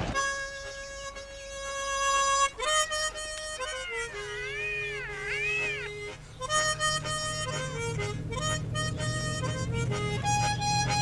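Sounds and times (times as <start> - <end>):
harmonica playing: 0.2 - 11.0.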